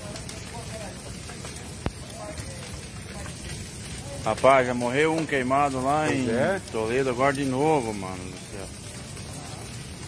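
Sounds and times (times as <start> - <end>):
flames rushing and crackling: 0.0 - 10.0.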